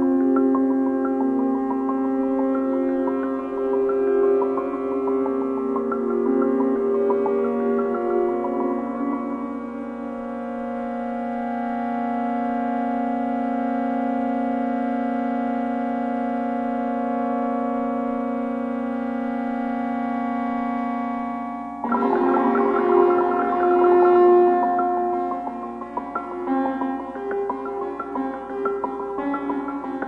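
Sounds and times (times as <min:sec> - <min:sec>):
synthesizer drone chord: 0:00.0 - 0:30.0
quick short synthesizer notes: 0:21.8 - 0:30.0.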